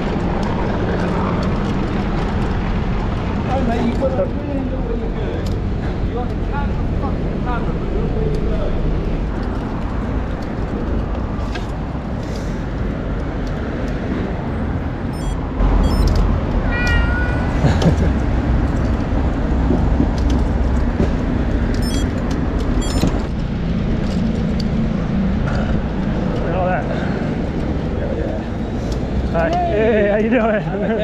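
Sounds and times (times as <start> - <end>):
street and wind rumble: 0.0 - 31.0
cat meowing: 16.6 - 17.6
sharp clicks: 21.7 - 23.3.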